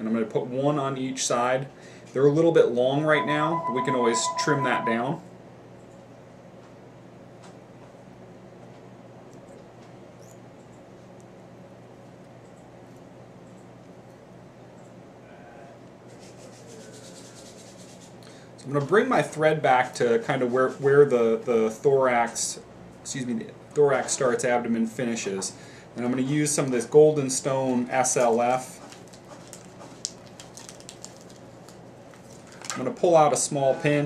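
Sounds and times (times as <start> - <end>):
fine scratchy strokes: 16.1 - 18.2
fingers rustling a packet: 28.0 - 32.8.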